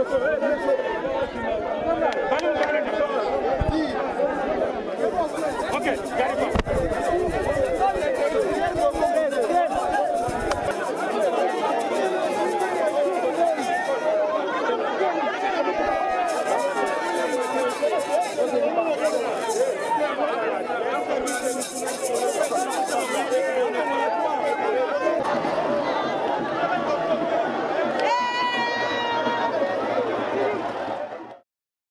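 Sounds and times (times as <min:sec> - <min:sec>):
crowd talking and shouting: 0:00.0 - 0:31.4.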